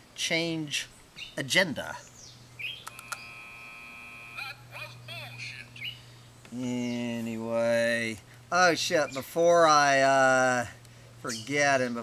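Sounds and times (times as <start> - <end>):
clicks: 2.8 - 3.2.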